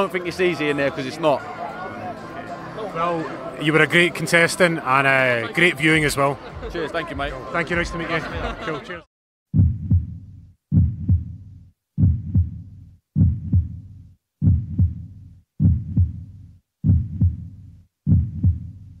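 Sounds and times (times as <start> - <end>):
heartbeat double thump: 9.5 - 18.9.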